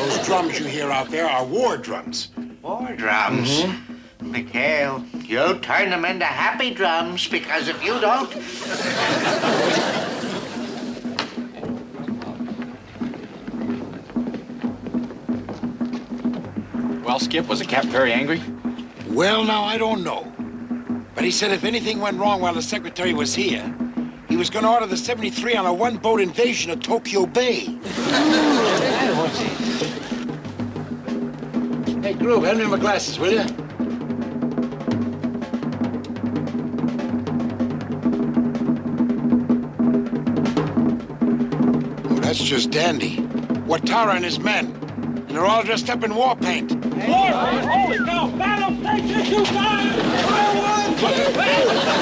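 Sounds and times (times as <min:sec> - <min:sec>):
drums beating rhythmic pattern: 0:00.0 - 0:52.0
held low musical tone: 0:00.0 - 0:52.0.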